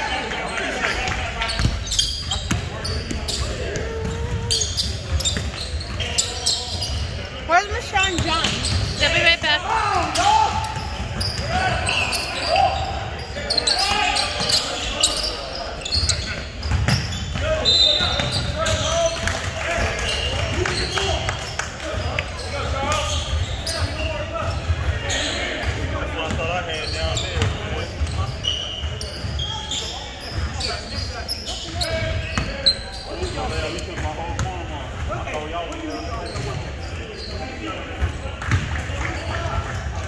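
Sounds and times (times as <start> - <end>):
indistinct voices: 0.0 - 16.4
sneaker squeaks: 0.5 - 39.8
basketball bouncing: 1.5 - 6.0, 7.7 - 9.7, 38.5 - 38.8
shoes squeaking on hardwood: 1.5 - 9.4.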